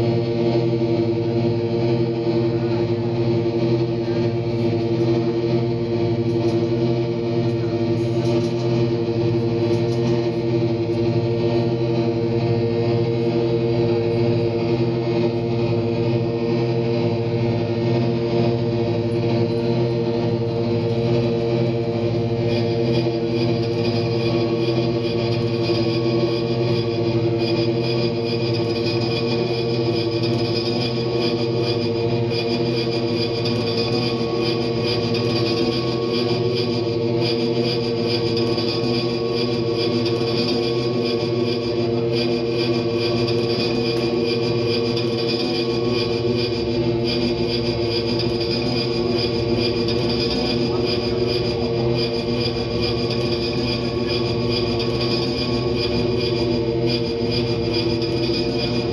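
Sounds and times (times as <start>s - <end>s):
amplified instrument drone: 0.0s - 58.9s.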